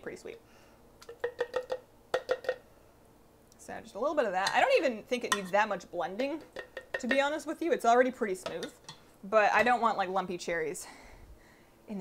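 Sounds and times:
spoon tapping metal pot: 1.0s - 2.6s, 4.4s - 7.4s, 8.4s - 9.0s.

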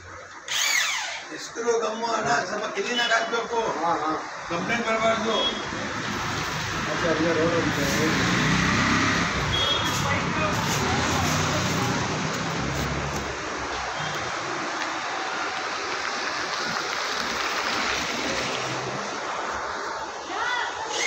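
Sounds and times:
street noise hiss: 0.0s - 21.0s
vehicle engine rumbling: 5.4s - 14.8s.

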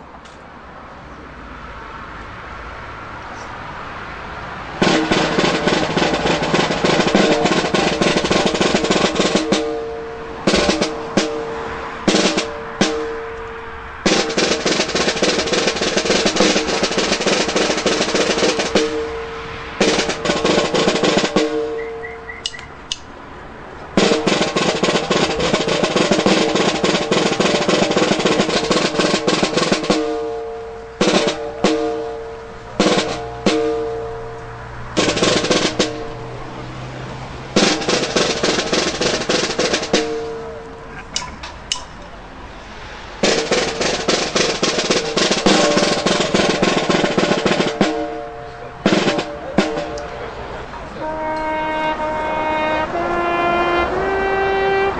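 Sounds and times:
snare drum roll: 4.8s - 22.0s, 24.0s - 34.0s, 34.9s - 36.1s, 37.6s - 40.6s, 43.2s - 54.1s.

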